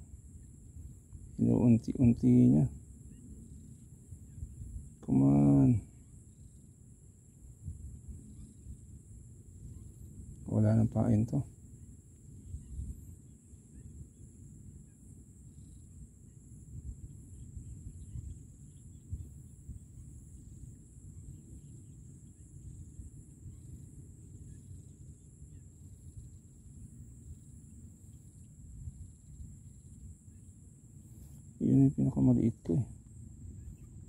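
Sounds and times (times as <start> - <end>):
thin high-pitched hiss: 0.0 - 34.0
wind rumbling on microphone: 0.0 - 34.0.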